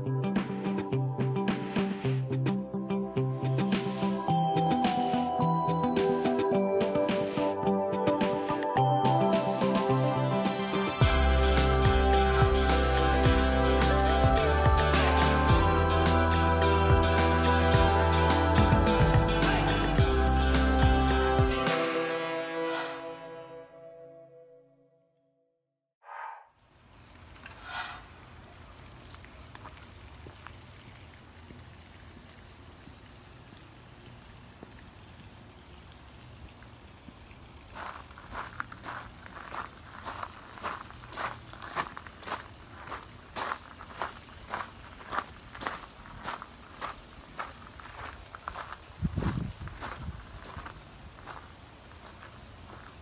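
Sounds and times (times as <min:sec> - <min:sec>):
short scrape: 0:26.0 - 0:26.5, 0:27.4 - 0:28.2
footsteps on gravel: 0:37.8 - 0:53.0
low rumble on microphone: 0:49.0 - 0:50.7.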